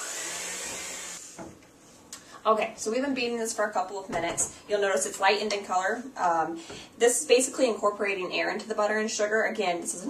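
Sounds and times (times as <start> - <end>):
electric hand mixer whirring: 0.0 - 1.4.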